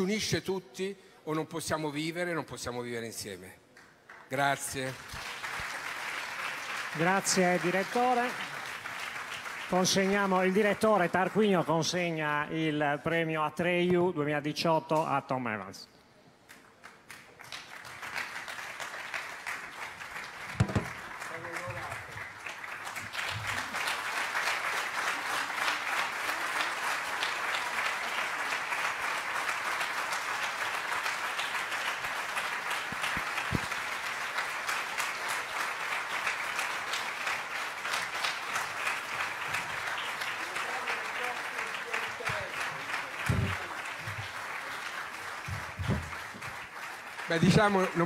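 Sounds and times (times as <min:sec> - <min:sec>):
large audience applauding: 0:03.8 - 0:12.5, 0:16.5 - 0:48.0.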